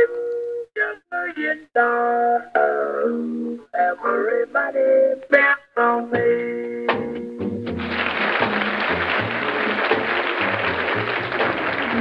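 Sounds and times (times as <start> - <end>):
country band music: 5.9 - 12.0.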